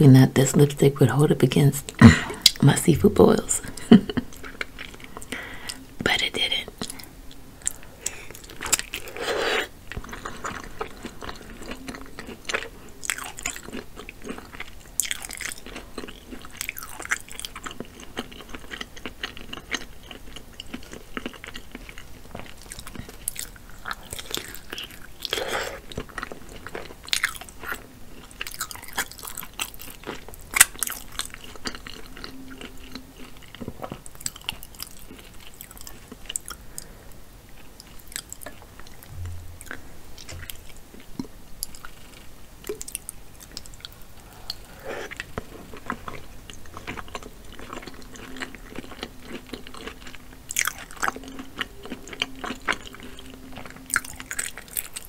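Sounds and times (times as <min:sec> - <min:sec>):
wet mouth sounds with crunches: 0:06.8 - 0:36.6
chewing and biting: 0:06.8 - 0:36.9, 0:37.6 - 0:55.0.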